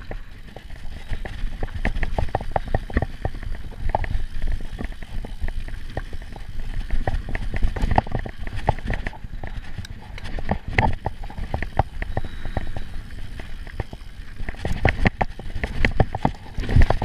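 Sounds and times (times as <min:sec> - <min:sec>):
bike rattling and knocking: 0:00.0 - 0:17.0
bike tyres rumbling on dirt: 0:00.0 - 0:17.0.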